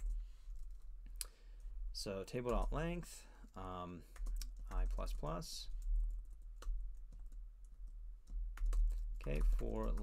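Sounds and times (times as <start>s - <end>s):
computer keyboard keystrokes: 4.1s - 10.0s.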